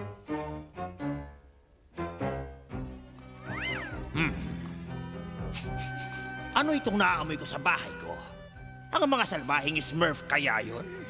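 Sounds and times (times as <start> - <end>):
cartoon cat meowing: 3.4 - 4.0.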